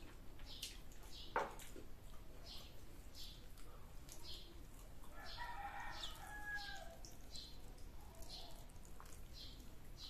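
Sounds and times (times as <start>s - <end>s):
rooster crowing: 5.1s - 7.0s.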